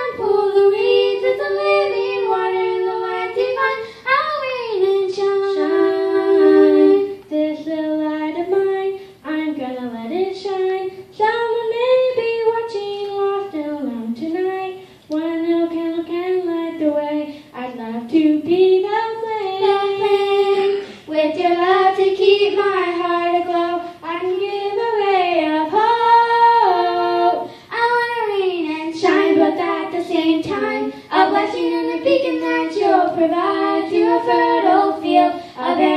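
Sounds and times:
girls singing into microphones: 0.0 - 35.9.

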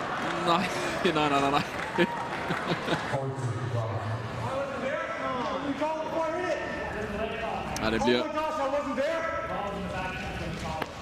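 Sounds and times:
men talking indistinctly: 3.1 - 11.0.

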